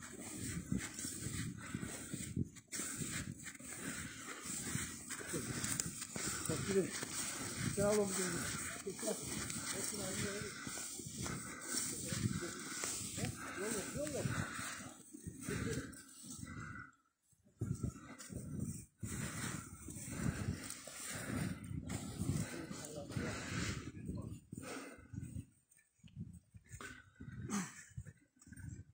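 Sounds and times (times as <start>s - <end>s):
footsteps crunching through snow: 0.0s - 15.0s
heavy uneven breathing: 0.0s - 25.5s.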